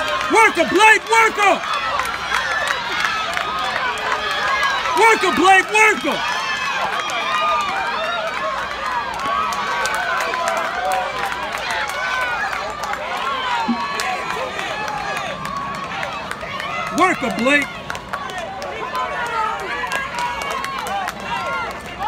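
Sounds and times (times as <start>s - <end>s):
spectators shouting and cheering: 0.0s - 22.0s.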